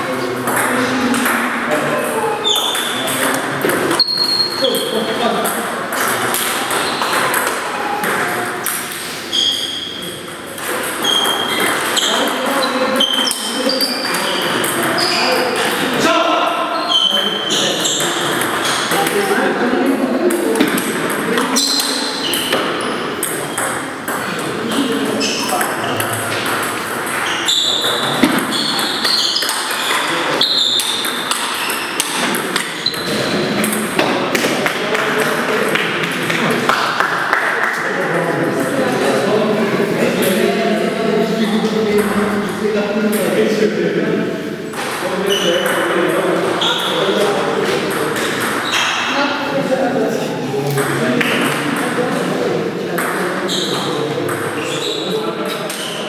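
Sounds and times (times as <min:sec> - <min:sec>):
background chatter: 0:00.0 - 0:56.0
table tennis ball pings: 0:02.4 - 0:15.9, 0:17.5 - 0:19.2, 0:20.3 - 0:34.0.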